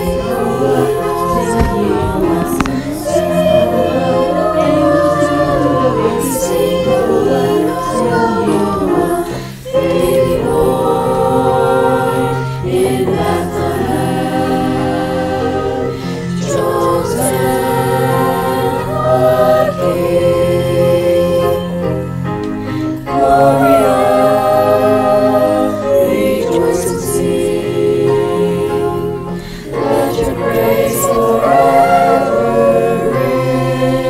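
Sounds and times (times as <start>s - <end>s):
choir singing a carol: 0.0s - 34.0s
steady low accompaniment: 0.0s - 34.0s.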